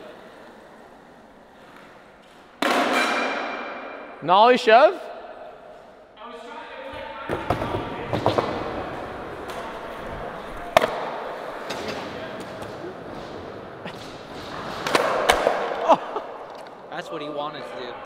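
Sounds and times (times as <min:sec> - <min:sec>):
skateboard wheels rolling: 0:00.0 - 0:02.8, 0:07.3 - 0:16.9
skateboard clacking and slapping: 0:07.3 - 0:12.8, 0:14.5 - 0:15.8.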